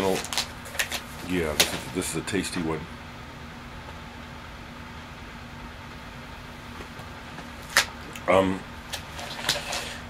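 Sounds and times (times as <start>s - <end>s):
furnace hum: 0.0s - 10.0s.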